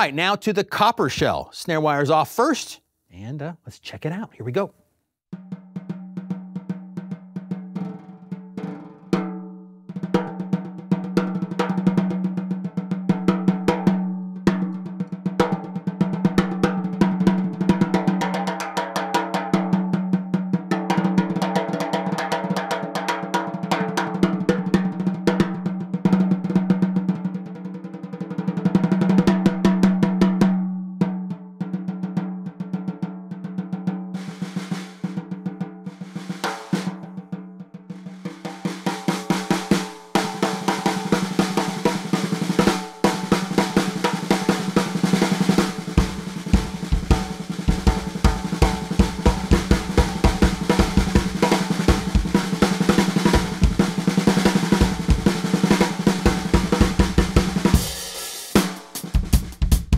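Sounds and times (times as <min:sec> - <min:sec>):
snare drum played with sticks: 0:05.3 - 0:30.6, 0:34.1 - 0:59.9.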